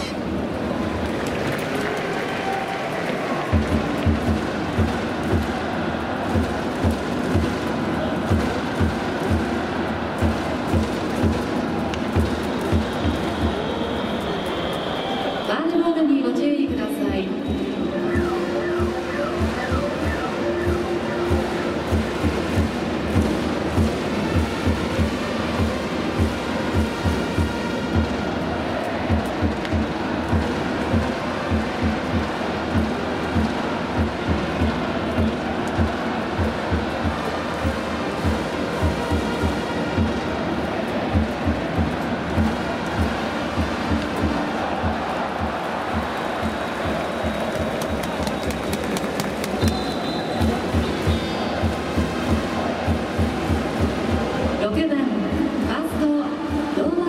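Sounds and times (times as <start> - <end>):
drum beating steady rhythm: 0.0 - 0.6, 1.2 - 15.4, 16.5 - 57.0
stadium crowd noise: 0.0 - 57.0.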